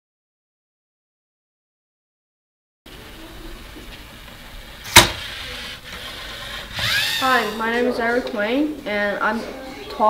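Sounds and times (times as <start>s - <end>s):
small electric motors whirring: 5.2s - 7.8s.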